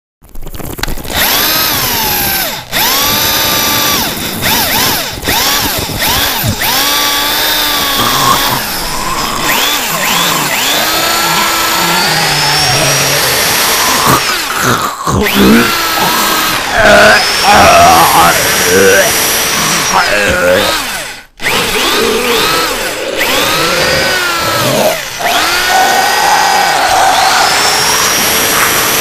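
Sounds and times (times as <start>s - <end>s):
motor-like whine sweeping in pitch: 1.2s - 14.5s.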